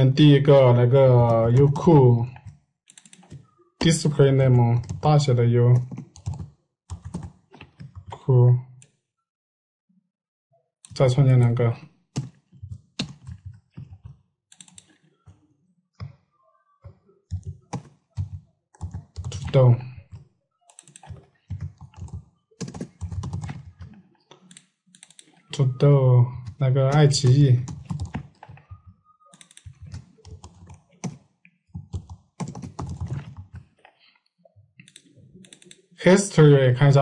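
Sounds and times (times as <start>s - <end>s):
computer keyboard typing: 1.1s - 3.5s, 4.6s - 8.2s, 12.2s - 15.4s, 16.8s - 33.8s, 34.8s - 35.8s.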